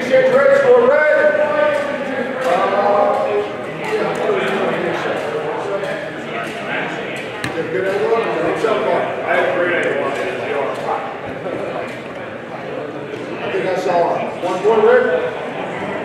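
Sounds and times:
chatter of voices echoing: 0.0 - 16.0.

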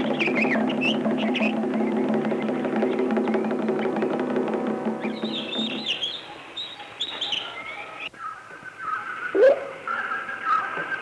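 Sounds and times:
bird chirps: 0.0 - 11.0
bird warbling call: 0.0 - 11.0.

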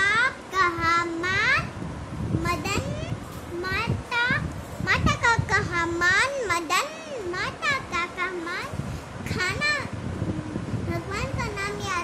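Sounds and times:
girl reading aloud: 0.0 - 12.0.

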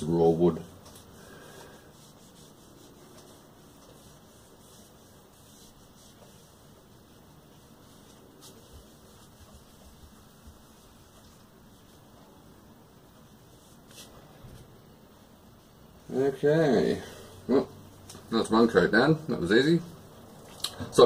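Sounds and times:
cloth rubbing wood: 0.0 - 14.8.

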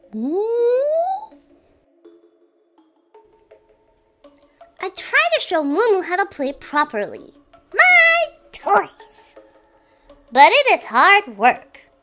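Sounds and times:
soft background music: 0.0 - 12.0
voiced muu call: 0.2 - 1.3.

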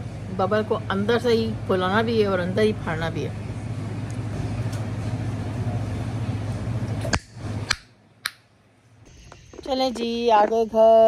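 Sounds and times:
shop background hum and hiss: 0.0 - 11.0.

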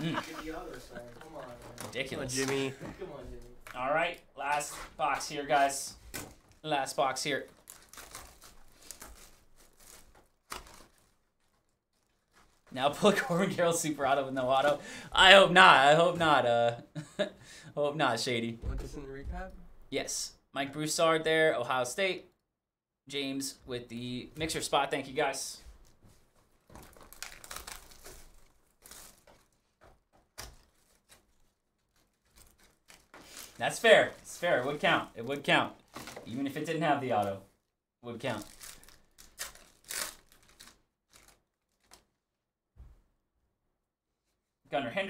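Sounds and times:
cellophane crinkling: 7.4 - 12.8, 25.8 - 29.8, 30.4 - 36.4, 38.2 - 42.2
wrap tearing: 7.5 - 12.7, 26.8 - 29.6, 38.2 - 42.1.

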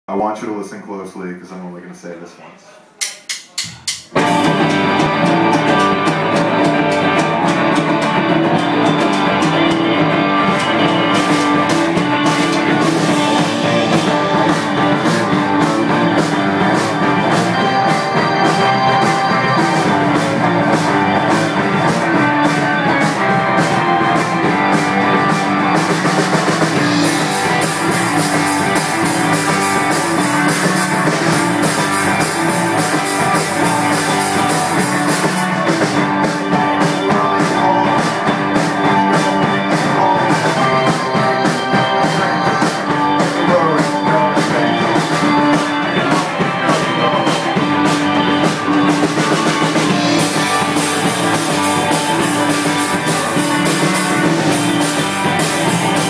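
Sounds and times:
cymbals: 3.0 - 7.5, 45.2 - 56.0
rock band playing live: 3.0 - 56.0.

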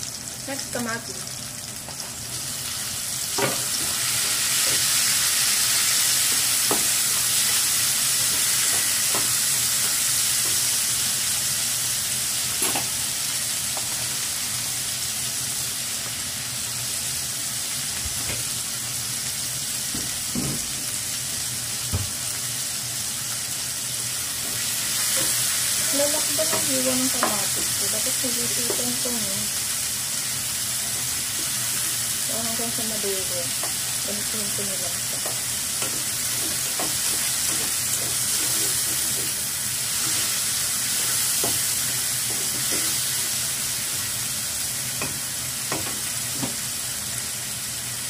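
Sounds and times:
tomatoes sizzling in skillet: 0.0 - 48.0.

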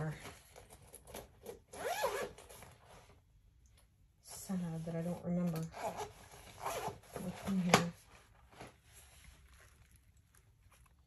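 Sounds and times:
zipper being pulled: 1.5 - 2.8, 5.7 - 7.8.

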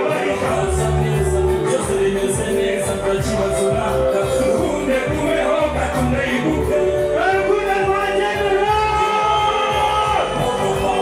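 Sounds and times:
live music through speakers: 0.0 - 11.0
steady drum beat: 0.0 - 11.0.

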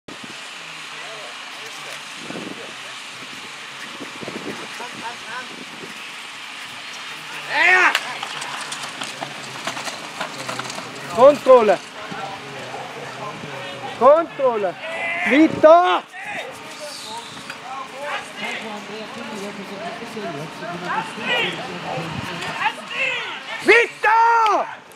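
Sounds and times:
outdoor background hiss: 0.1 - 24.9
faint calling voices: 0.8 - 24.9
people talking indistinctly: 6.8 - 24.9.

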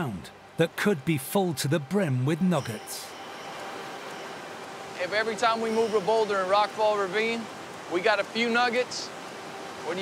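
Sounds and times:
creek rushing over boulders: 0.0 - 10.0.

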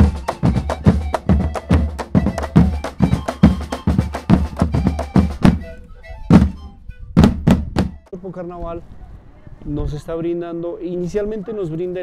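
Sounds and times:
percussion-led music: 0.0 - 8.2
loud drum hits: 7.2 - 8.1.

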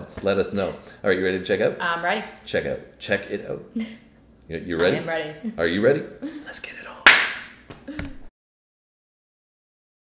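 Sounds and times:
sharp crack: 7.1 - 7.6.

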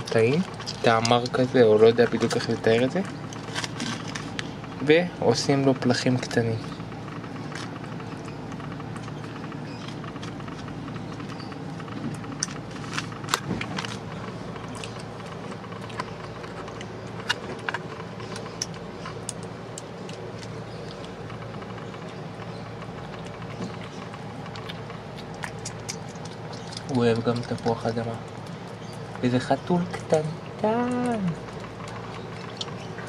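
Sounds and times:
steady outdoor hum: 0.0 - 33.0.

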